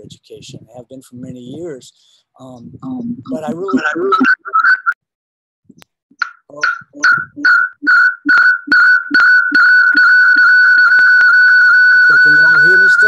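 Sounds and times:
high electronic beeps: 2.9 - 5.0, 6.2 - 13.0.

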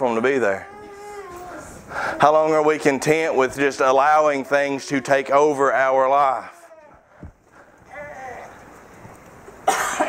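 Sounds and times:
person coughing: 9.6 - 10.0.

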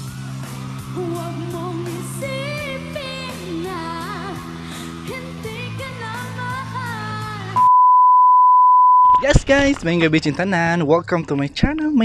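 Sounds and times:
pop song with woman singing: 1.0 - 7.7
loud high beep tone: 7.6 - 9.2.

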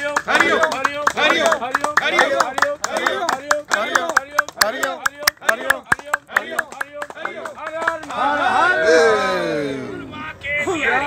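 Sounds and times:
hands clapping in rhythm: 0.0 - 8.5
voices chanting: 0.0 - 10.2.

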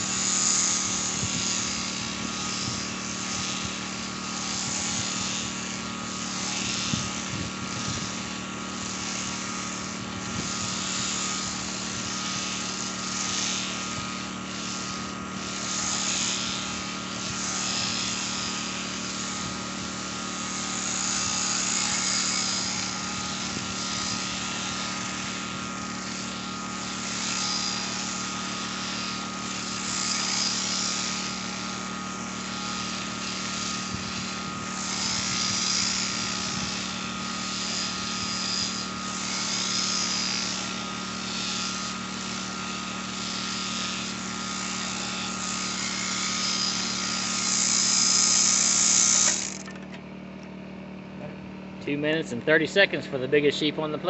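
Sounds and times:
clippers cutting through fleece: 0.0 - 50.0
sheep shearing handpiece running: 0.0 - 50.5, 51.2 - 54.0.

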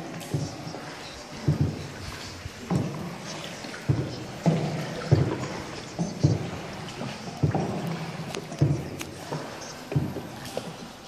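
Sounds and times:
paddle strokes in water: 0.0 - 11.0
steady hiss of water: 0.0 - 11.0.

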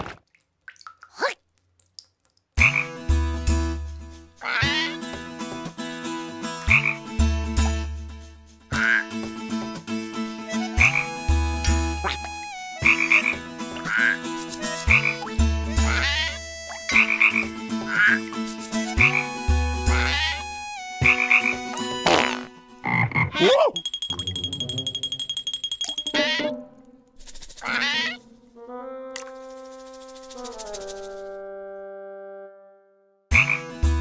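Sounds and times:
cartoon frog croaking: 8.7 - 9.1, 12.0 - 18.4, 19.9 - 23.8, 27.6 - 28.2.

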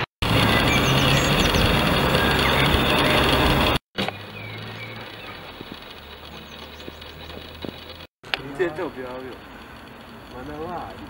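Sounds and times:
birds chirping: 0.0 - 11.0
low hum: 0.0 - 11.0.

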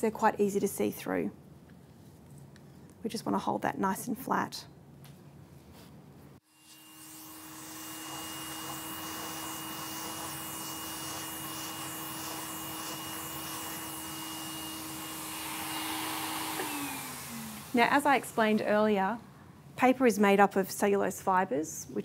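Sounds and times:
vacuum cleaner running: 6.4 - 19.2.

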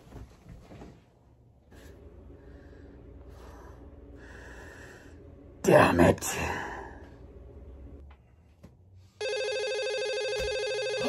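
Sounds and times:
telephone ringing: 9.2 - 11.0.

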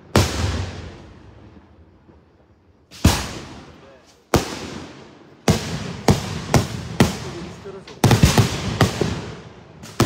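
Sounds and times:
fireworks bursting with rumble: 0.0 - 10.0.

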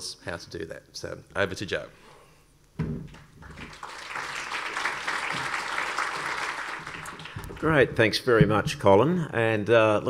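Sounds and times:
audience applause: 3.4 - 7.9.

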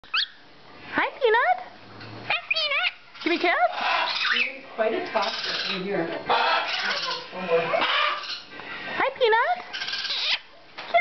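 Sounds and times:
macaw warbling calls: 0.0 - 0.4, 2.3 - 4.6, 5.2 - 8.5, 9.7 - 10.5.

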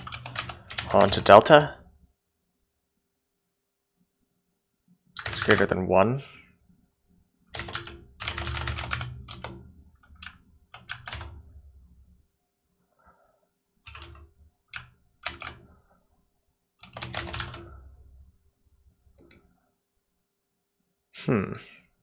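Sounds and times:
computer keyboard typing: 0.0 - 1.5, 5.2 - 5.7, 7.5 - 11.5, 13.9 - 15.7, 16.8 - 17.9.

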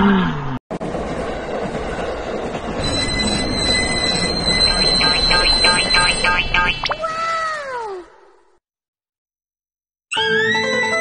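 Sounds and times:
rapid pulsing sound: 0.8 - 7.1.

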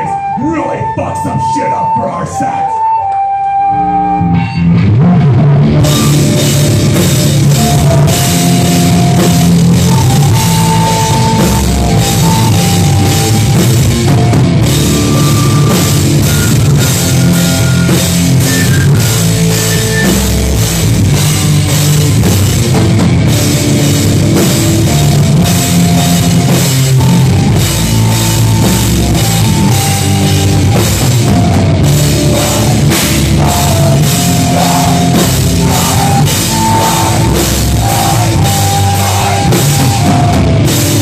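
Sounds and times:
flute melody: 0.0 - 20.8, 24.8 - 41.0
bass guitar: 0.0 - 41.0
distorted electric guitar: 2.6 - 41.0
drum kit with cymbals: 5.0 - 41.0.

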